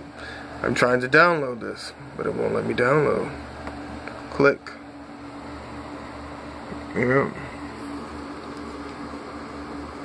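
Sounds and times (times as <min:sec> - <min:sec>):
fan humming: 0:00.0 - 0:10.0.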